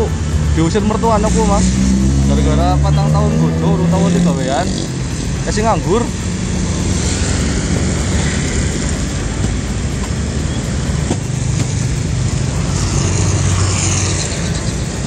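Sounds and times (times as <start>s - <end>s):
car engines running: 0.0s - 15.0s
motorcycle engines running: 0.0s - 15.0s.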